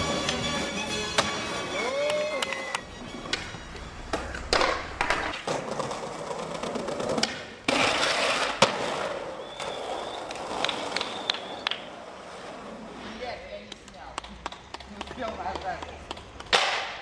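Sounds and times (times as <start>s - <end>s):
skateboard wheels rolling: 0.0s - 17.0s
skateboard sliding down ledge: 1.2s - 13.3s
skateboard clacks: 2.0s - 12.5s, 13.5s - 17.0s.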